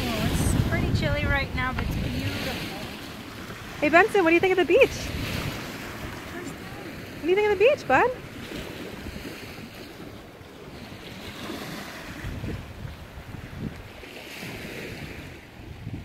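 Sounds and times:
small waves washing on shore: 0.0 - 16.0
wind rumbling on microphone: 0.0 - 16.0.

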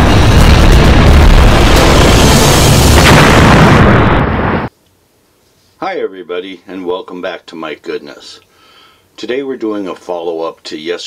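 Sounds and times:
rumbling explosion-like sound effect: 0.0 - 4.7.

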